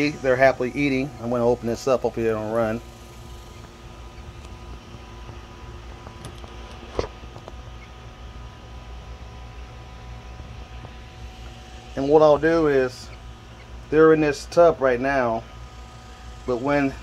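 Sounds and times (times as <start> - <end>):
small fan humming: 0.0 - 17.0.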